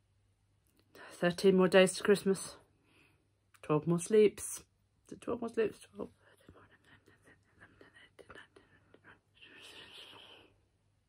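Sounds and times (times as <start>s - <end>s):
woman whispering: 5.2s - 10.6s.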